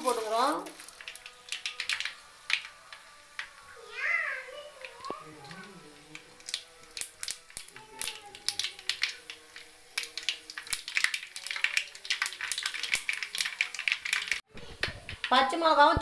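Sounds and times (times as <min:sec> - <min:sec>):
hot oil crackling and popping: 0:00.0 - 0:16.0.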